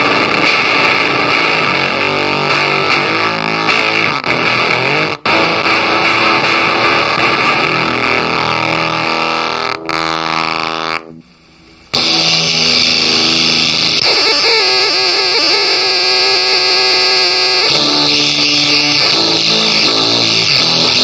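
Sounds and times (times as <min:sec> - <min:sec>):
fuzz pedal feedback drones: 0:00.0 - 0:21.0.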